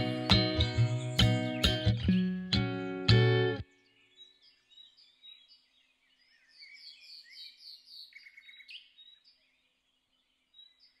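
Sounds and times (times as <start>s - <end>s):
bird trill: 0.0s - 2.4s
small bird chirping: 0.0s - 2.4s, 3.6s - 11.0s.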